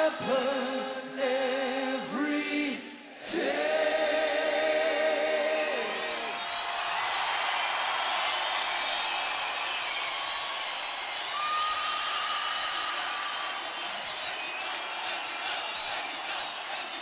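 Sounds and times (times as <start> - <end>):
crowd cheering and shouting: 5.7 - 17.0.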